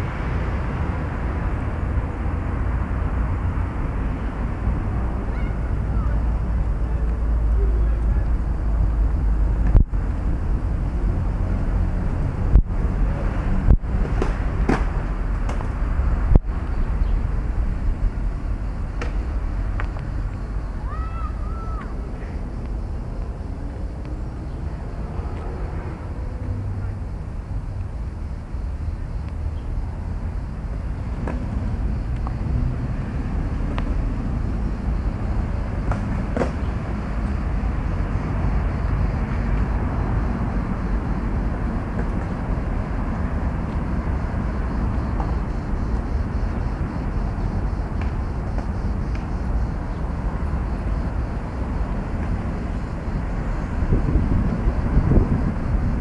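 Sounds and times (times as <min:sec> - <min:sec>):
distant road traffic: 0:00.0 - 0:56.0
low outdoor rumble: 0:00.0 - 0:56.0.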